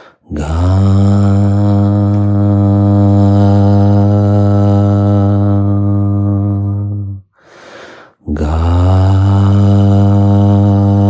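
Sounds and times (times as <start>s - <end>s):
man chanting low note: 0.0s - 7.3s, 8.2s - 11.0s.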